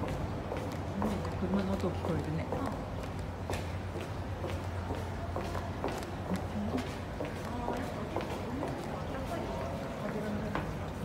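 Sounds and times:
footsteps walking: 0:00.0 - 0:11.0
low hum of car traffic: 0:00.0 - 0:11.0.

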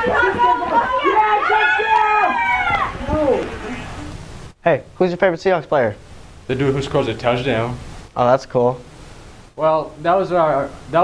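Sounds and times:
teenagers talking excitedly: 0:00.0 - 0:04.2.

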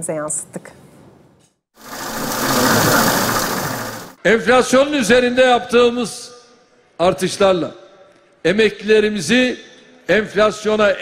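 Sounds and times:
banknote counting machine whirr: 0:01.8 - 0:04.1.

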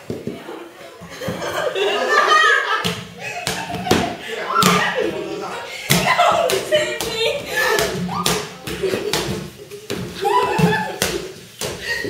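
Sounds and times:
excited shouting voices: 0:01.7 - 0:08.4, 0:10.2 - 0:11.0.

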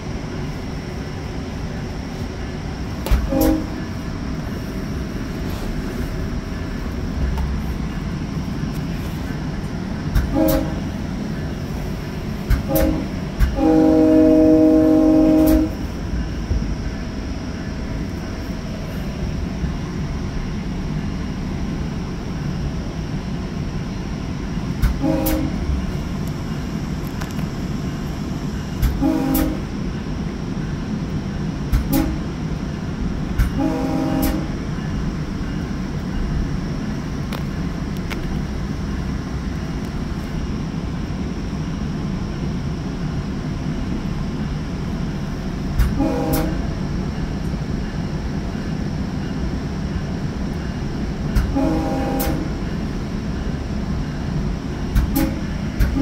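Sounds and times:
train rolling rumble: 0:00.0 - 0:56.0
train horn blasts: 0:03.1 - 0:03.9, 0:10.3 - 0:10.9, 0:12.6 - 0:15.9, 0:25.0 - 0:25.7, 0:29.0 - 0:29.7, 0:31.9 - 0:32.2, 0:33.6 - 0:34.6, 0:45.9 - 0:46.7, 0:51.5 - 0:52.6.

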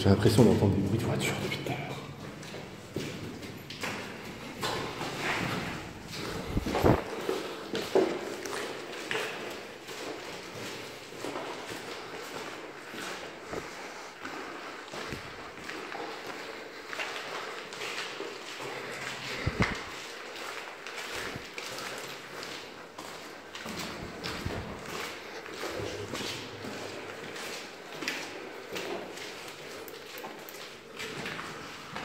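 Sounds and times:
footsteps on concrete stairs: 0:02.0 - 0:32.0.

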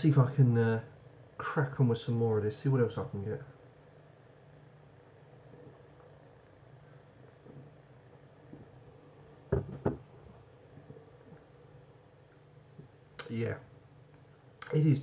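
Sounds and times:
glass set down on countertop: 0:09.5 - 0:10.1.

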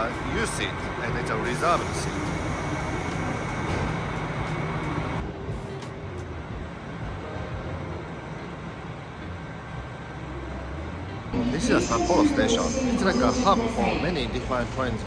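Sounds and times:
train moving along platform: 0:00.0 - 0:15.0
train running rumble: 0:00.0 - 0:15.0.

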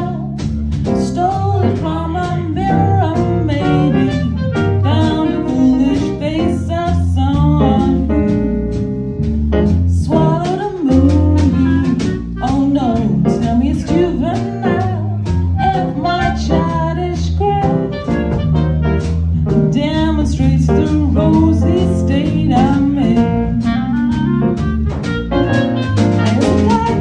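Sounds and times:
woman singing jazz: 0:00.0 - 0:08.9, 0:09.6 - 0:27.0
bass notes: 0:00.0 - 0:27.0
drum kit: 0:00.0 - 0:27.0
clarinet: 0:02.5 - 0:06.6, 0:11.0 - 0:20.0, 0:21.3 - 0:27.0.

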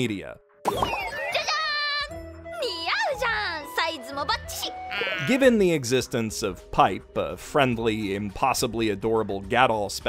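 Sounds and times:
light background music: 0:00.0 - 0:10.0
high excited voice exclaiming: 0:01.1 - 0:05.4.

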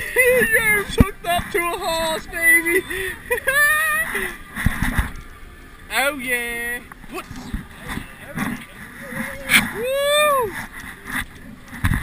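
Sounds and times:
man shouting and whooping: 0:09.3 - 0:10.5.

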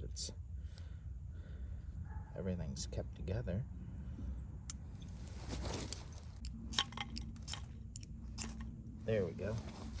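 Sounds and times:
rod and striker clinking: 0:06.0 - 0:08.8.

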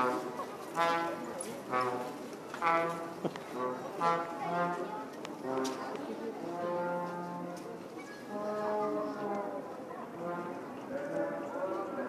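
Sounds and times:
brass instrument playing slow tune: 0:00.0 - 0:07.7, 0:08.3 - 0:09.5, 0:10.2 - 0:10.7
faint crowd chatter: 0:00.0 - 0:12.0.

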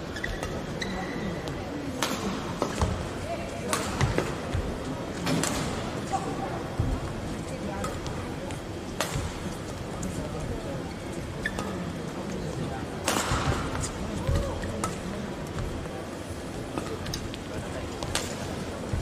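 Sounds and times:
crowd voices in large hall: 0:00.0 - 0:19.0
rackets hitting shuttlecock: 0:03.6 - 0:04.5, 0:13.0 - 0:15.0, 0:18.0 - 0:18.6.

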